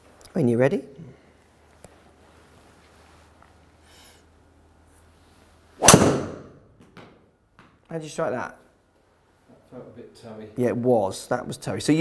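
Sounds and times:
golf driver striking ball: 5.8 - 6.6.

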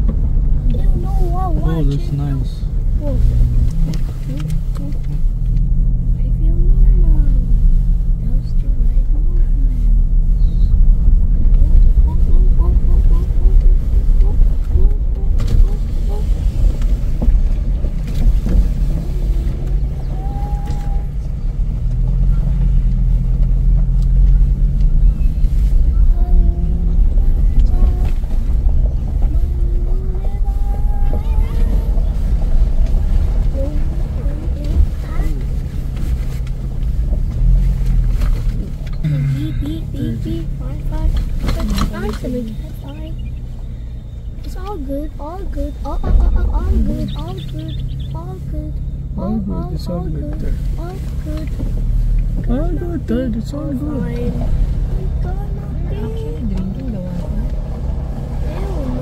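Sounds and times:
engine and tyre rumble on gravel: 0.0 - 59.0
faint voices talking: 44.4 - 59.0.

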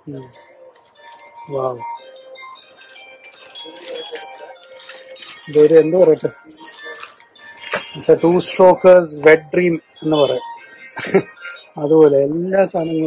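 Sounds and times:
faint background music: 0.0 - 13.0
small metal parts clinking: 0.2 - 1.5, 2.1 - 9.1
plastic bags crinkling: 0.2 - 9.0.

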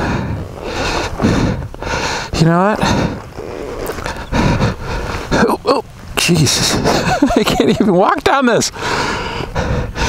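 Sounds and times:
wind rumbling on microphone: 0.0 - 8.0
boots scuffing on loose dirt: 0.4 - 6.2.

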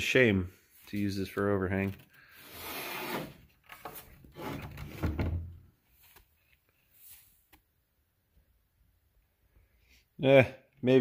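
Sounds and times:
wood scraping against wood: 2.2 - 5.3.

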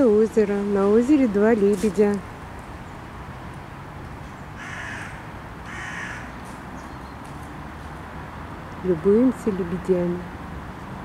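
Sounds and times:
low background noise: 0.0 - 11.0
bird giving harsh calls: 4.6 - 6.4.

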